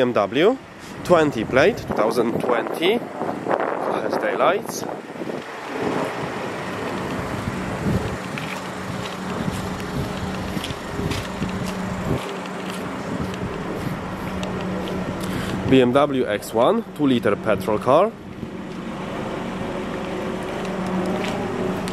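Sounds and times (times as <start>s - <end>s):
wind buffeting microphone: 0.7s - 16.7s
steady low hum: 4.8s - 21.9s.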